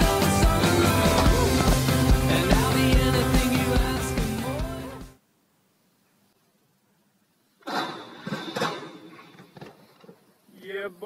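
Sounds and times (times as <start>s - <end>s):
bike pegs grinding on metal rail: 7.6s - 9.8s.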